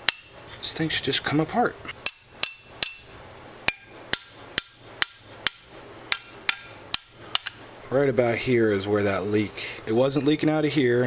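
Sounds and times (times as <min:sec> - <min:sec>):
hammer striking metal: 0:00.0 - 0:00.4, 0:02.0 - 0:07.6.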